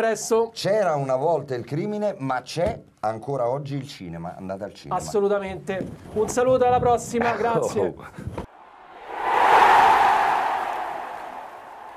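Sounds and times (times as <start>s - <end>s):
whoosh: 8.5s - 11.9s.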